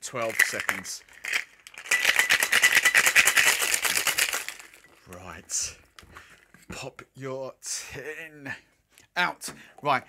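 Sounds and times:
ice rattling in cocktail shaker: 0:00.0 - 0:05.3.

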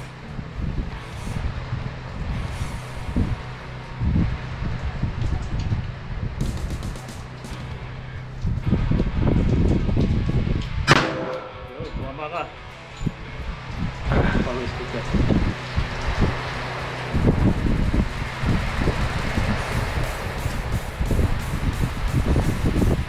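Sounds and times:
steady low rumble: 0:00.0 - 0:23.0
handgun shot: 0:10.9 - 0:11.8.

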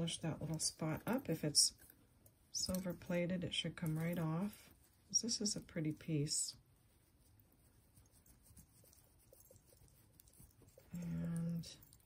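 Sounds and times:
cloth rubbing on necklace: 0:03.7 - 0:12.0.

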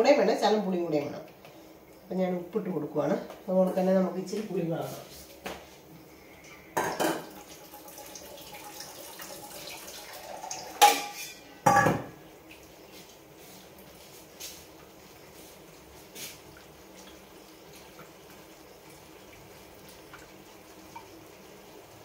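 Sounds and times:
metal vessels clanging: 0:10.3 - 0:12.2.

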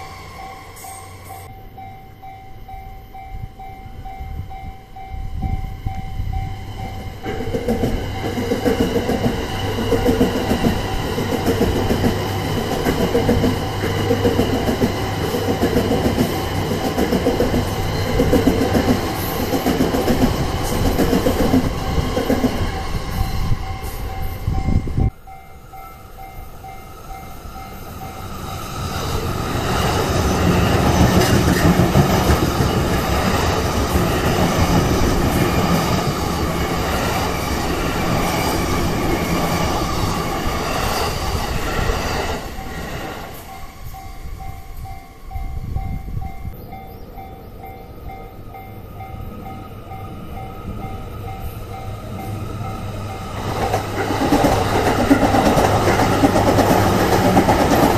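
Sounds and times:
crossing warning bell ringing: 0:00.0 - 0:57.9
train wheels clacking over rail joints: 0:53.5 - 0:57.9.

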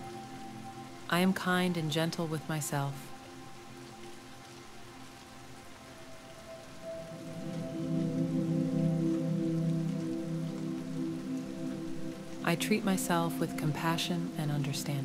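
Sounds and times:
soft synth pad chords: 0:00.0 - 0:15.0
steady rain: 0:00.0 - 0:15.0.

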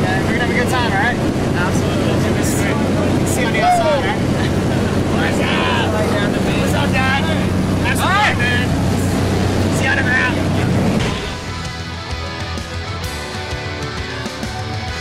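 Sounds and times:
plane engine droning: 0:00.0 - 0:11.8.

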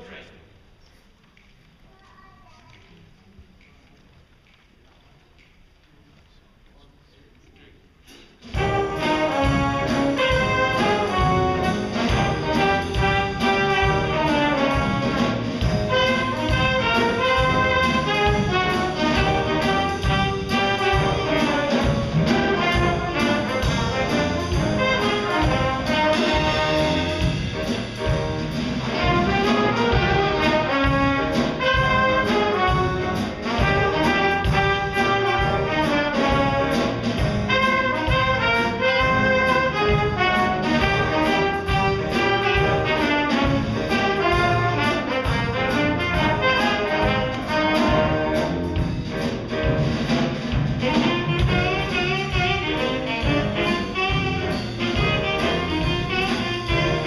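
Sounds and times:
drum kit: 0:08.0 - 0:57.0
piano: 0:08.1 - 0:57.0
trombone: 0:08.4 - 0:57.0
trumpet: 0:08.4 - 0:57.0
saxophones: 0:50.8 - 0:57.0.

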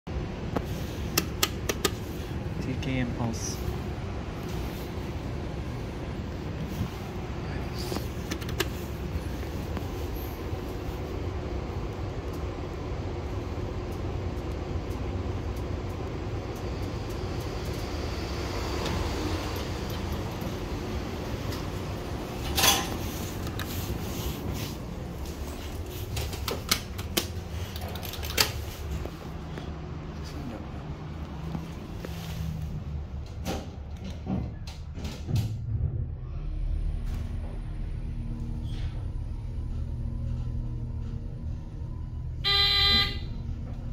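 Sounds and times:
elevator running low rumble: 0:00.1 - 0:43.9.

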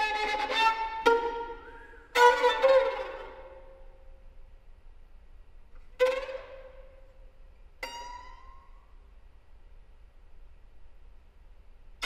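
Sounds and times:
solo violin: 0:00.0 - 0:04.2, 0:05.8 - 0:08.6.

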